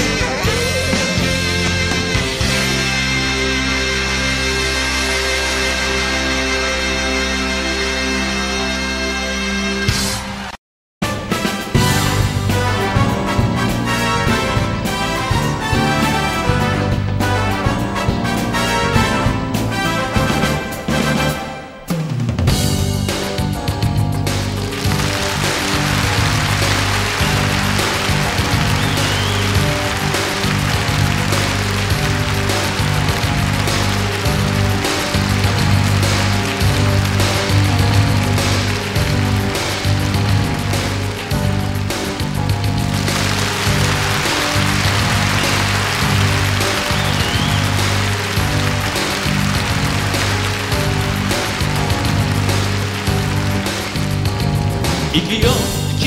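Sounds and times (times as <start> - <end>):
instrumental pop music: 0.0 - 8.2, 11.0 - 56.0.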